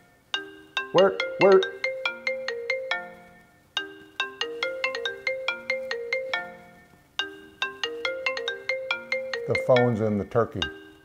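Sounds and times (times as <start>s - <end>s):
phone ringtone chiming melody: 0.0s - 11.0s.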